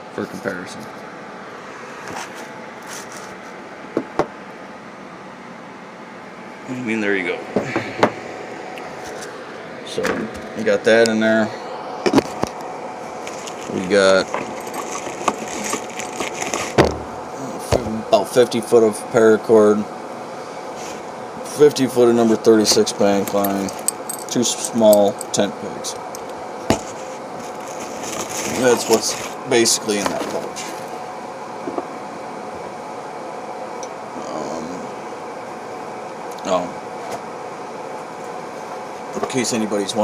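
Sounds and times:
small items handled and set down: 13.2s - 17.1s.

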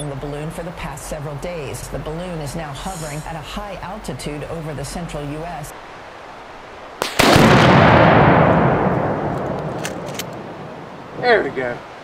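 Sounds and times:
gunshot cracks: 7.0s - 10.3s
loud rumbling explosion: 7.2s - 9.5s.

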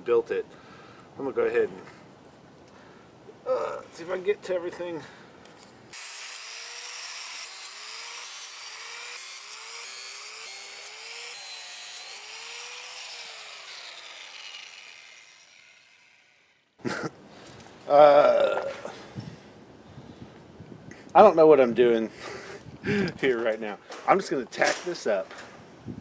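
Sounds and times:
power tool motor whining: 5.9s - 16.7s.

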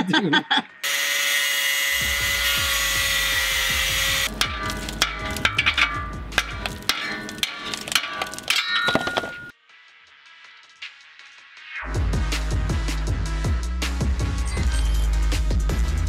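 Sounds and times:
angle grinder cutting metal: 0.8s - 9.5s
sharp percussive hits: 2.2s - 9.6s
music with bass line: 11.8s - 16.0s.

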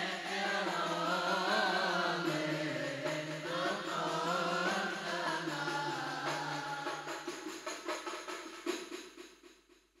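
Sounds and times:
hand drum and jingle beat: 0.0s - 9.9s.

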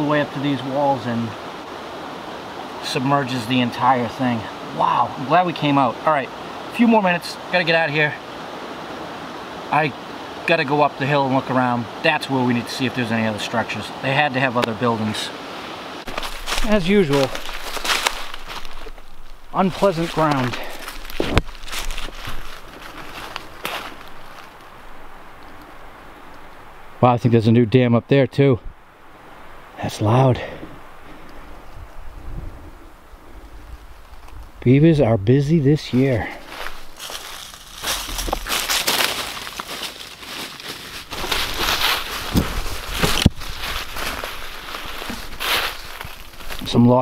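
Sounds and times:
faint steady hiss: 0.0s - 47.0s
footsteps crunching dry leaves: 16.0s - 25.3s, 35.8s - 46.8s
twig cracking: 16.1s - 26.6s, 33.8s - 34.6s, 36.4s - 46.7s.

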